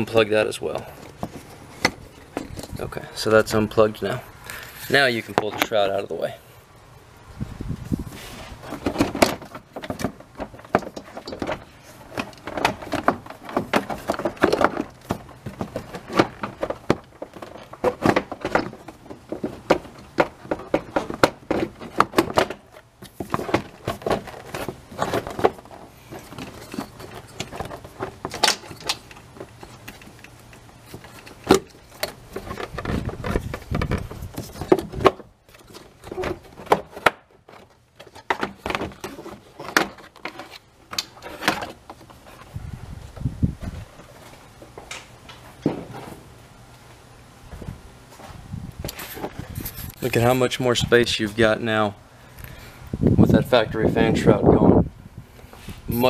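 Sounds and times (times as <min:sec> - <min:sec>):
plastic knocking and scraping: 0:08.6 - 0:30.2, 0:30.9 - 0:42.5.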